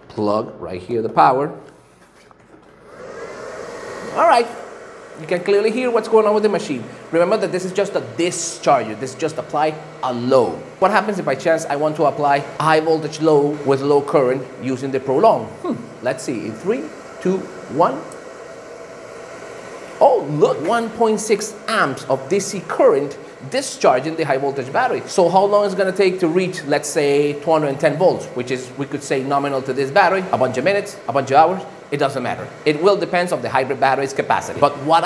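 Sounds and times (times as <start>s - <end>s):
cooling fan whirring: 0.0s - 35.0s.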